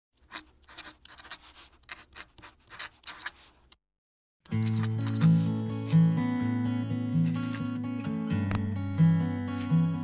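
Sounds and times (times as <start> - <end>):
pen nib scratching paper: 0.2 - 3.7, 4.5 - 5.6, 7.3 - 7.7.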